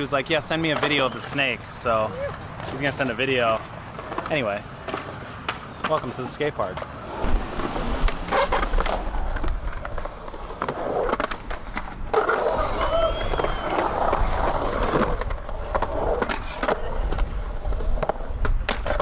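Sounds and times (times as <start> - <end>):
skateboard wheels rolling on concrete: 0.0 - 19.0
skateboard clacks: 2.2 - 19.0.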